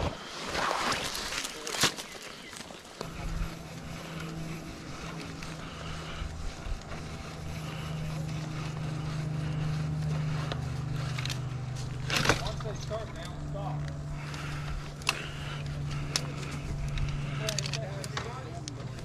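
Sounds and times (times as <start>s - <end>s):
engine running: 3.0s - 19.0s.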